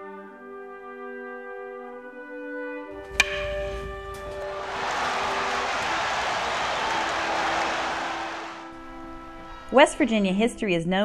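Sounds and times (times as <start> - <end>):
sharp crack: 2.9 - 8.6.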